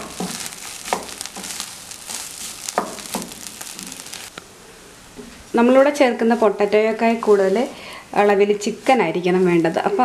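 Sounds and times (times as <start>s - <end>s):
food sizzling in a frying pan: 0.0s - 4.4s.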